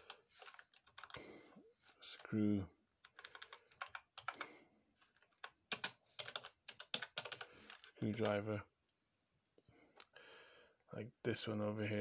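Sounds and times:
computer keyboard clicks: 0.0s - 1.2s, 3.0s - 4.5s, 5.4s - 8.4s.

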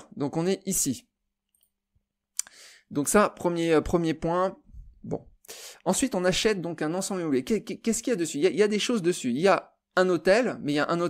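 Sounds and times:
man speaking: 0.0s - 1.1s, 2.9s - 11.0s.

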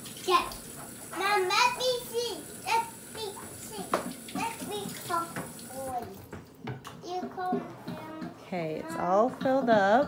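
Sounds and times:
faucet running into a tray: 0.0s - 6.4s.

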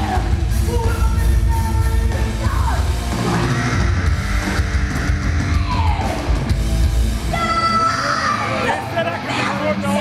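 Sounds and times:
distorted electric guitar: 0.0s - 10.0s
drums: 0.0s - 10.0s.

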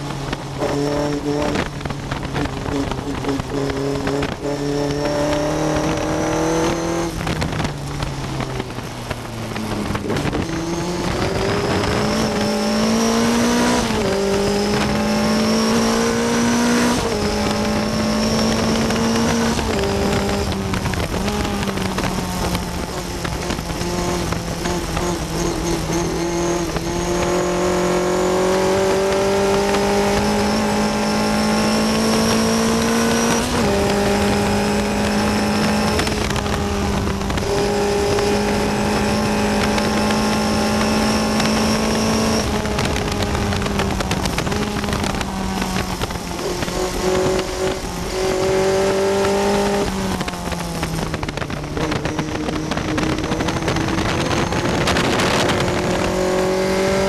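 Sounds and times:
race car engine accelerating: 0.0s - 57.0s.

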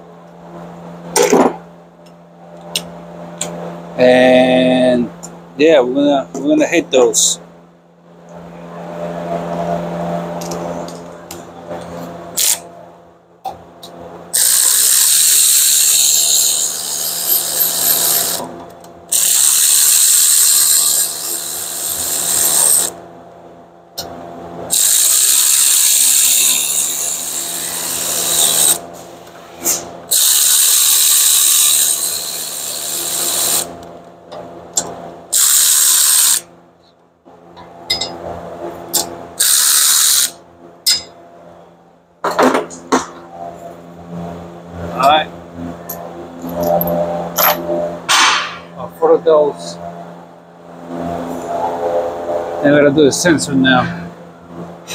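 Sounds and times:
cordless electric ratchet running: 12.4s - 12.6s, 14.4s - 18.5s, 19.1s - 23.0s, 24.7s - 28.8s, 30.1s - 33.7s, 35.3s - 36.5s, 39.4s - 40.4s.

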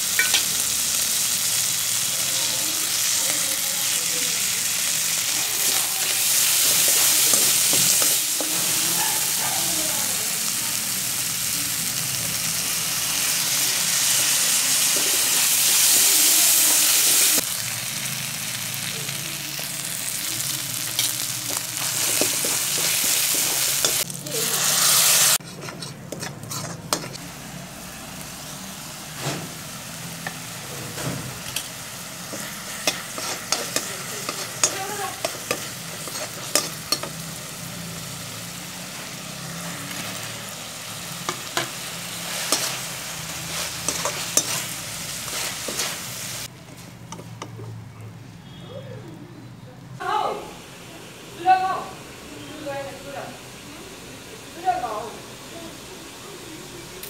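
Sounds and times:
food sizzling in a wok: 0.0s - 46.5s, 50.0s - 57.0s
metal spatula scraping pan: 25.3s - 27.2s, 30.2s - 37.2s, 41.3s - 46.1s.

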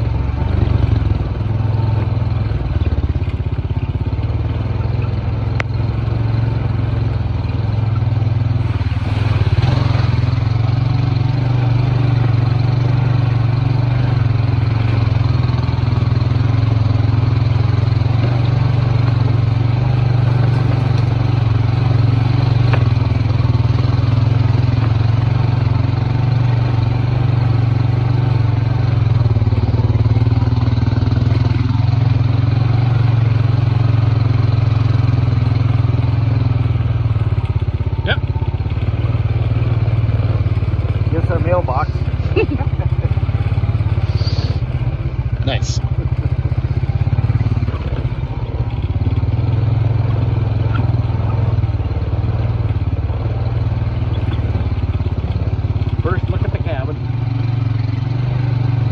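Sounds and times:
road and ride noise: 0.0s - 58.9s
vehicle engine droning: 0.0s - 58.9s.

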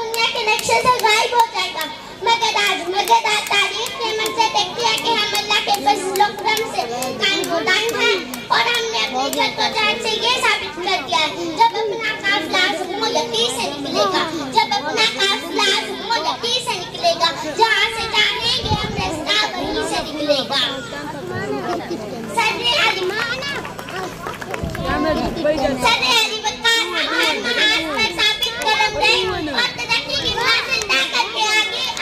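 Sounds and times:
girl speaking into a microphone: 0.0s - 23.7s, 24.6s - 32.0s.

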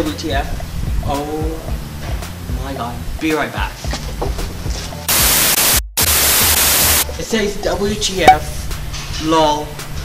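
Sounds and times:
loud static hiss: 5.0s - 7.1s.

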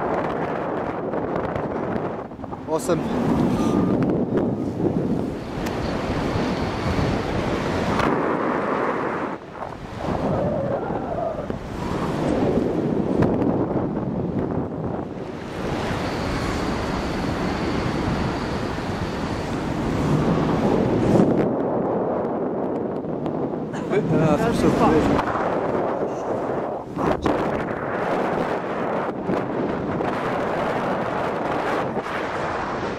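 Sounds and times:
wind rushing over microphone: 0.0s - 32.9s.

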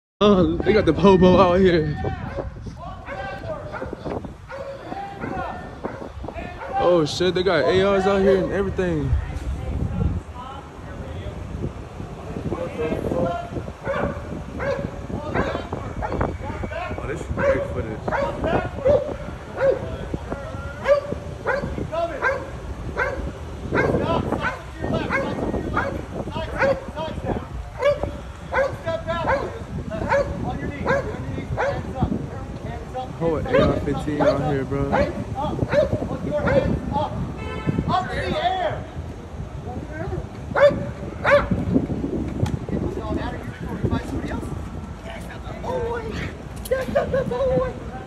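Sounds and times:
dog barking: 2.2s - 6.8s, 13.8s - 16.3s, 17.3s - 19.9s, 20.8s - 26.9s, 27.8s - 31.9s, 33.5s - 36.8s, 40.5s - 41.6s.

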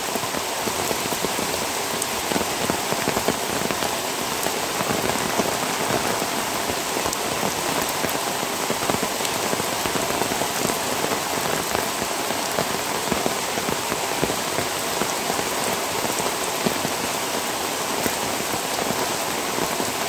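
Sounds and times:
heavy rain: 0.0s - 20.0s.

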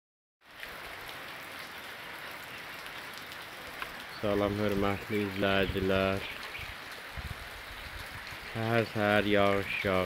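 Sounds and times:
rain falling on leaves: 0.4s - 10.0s.

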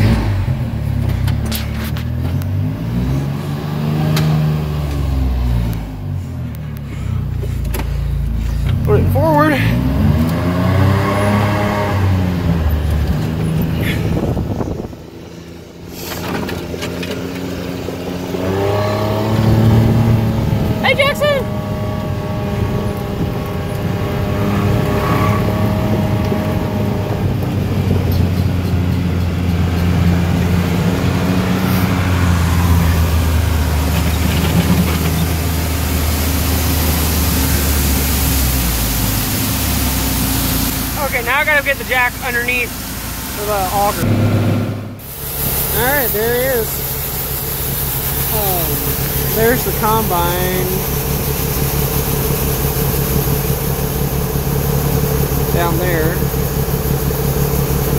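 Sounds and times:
utility vehicle engine driving: 0.0s - 57.9s.

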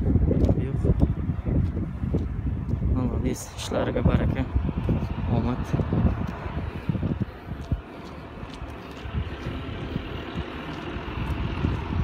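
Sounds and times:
wind buffeting microphone: 0.0s - 12.0s
distant vehicle engine: 0.8s - 12.0s.

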